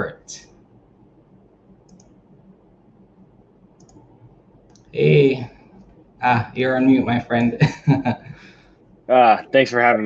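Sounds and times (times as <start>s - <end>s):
faint room noise: 0.0s - 10.0s
soft computer mouse clicks: 1.8s - 2.2s, 3.8s - 4.9s.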